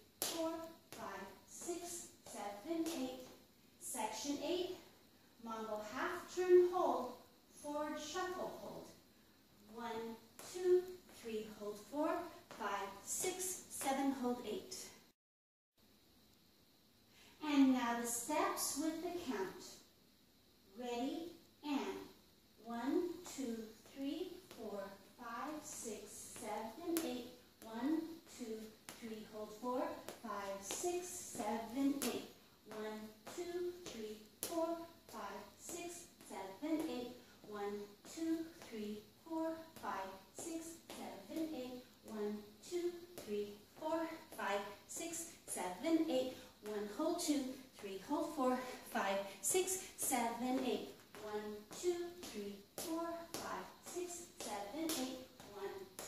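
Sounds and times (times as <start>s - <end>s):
woman counting aloud: 0.2s - 4.8s, 5.4s - 8.9s, 9.7s - 14.9s, 17.4s - 19.8s, 20.7s - 56.0s.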